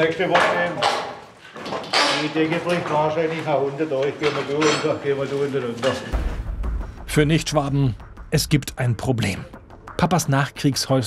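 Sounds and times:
man talking: 0.0s - 1.0s, 7.1s - 11.0s.

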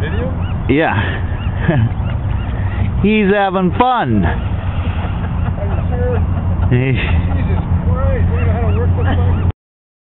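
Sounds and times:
indistinct voices talking: 0.0s - 9.5s.

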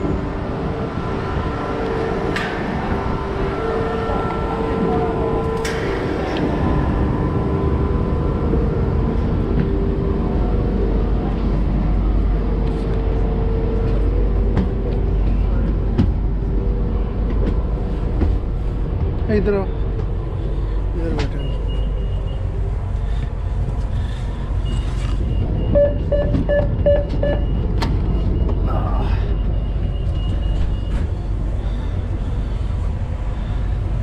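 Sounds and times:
deep rumble: 0.0s - 34.0s
train equipment humming: 0.0s - 34.0s.

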